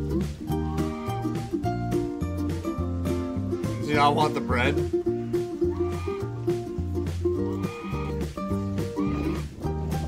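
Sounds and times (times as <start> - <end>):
background music with bass line: 0.0 - 10.0
goose honking: 0.6 - 1.4, 5.1 - 6.5, 7.3 - 10.0.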